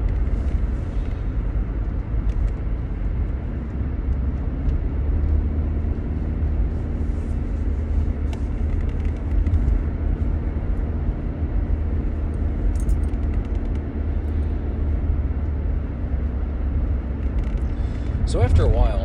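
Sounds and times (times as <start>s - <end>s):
car road and engine noise: 0.0s - 19.0s.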